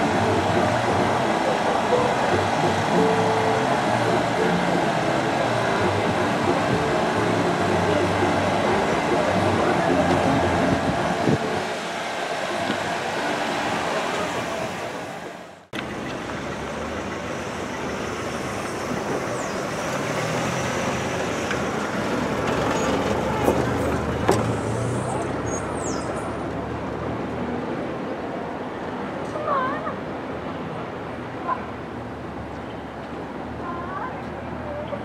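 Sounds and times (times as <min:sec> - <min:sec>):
cars passing at low speed: 0:00.0 - 0:35.0.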